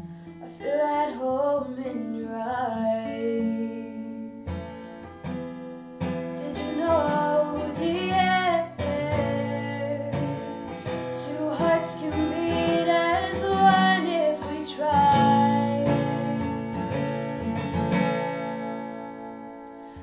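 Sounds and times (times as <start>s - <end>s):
woman singing: 0.4s - 4.7s, 6.4s - 16.8s
acoustic guitar strumming: 1.9s - 20.0s.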